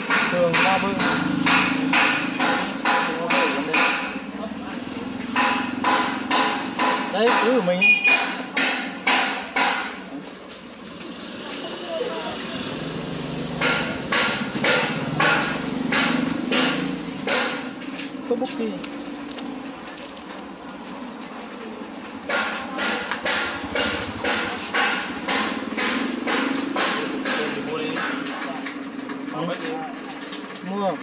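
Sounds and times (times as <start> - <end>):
sharp knocks: 0.0 - 4.3, 5.2 - 10.1, 13.6 - 17.9, 22.2 - 28.5.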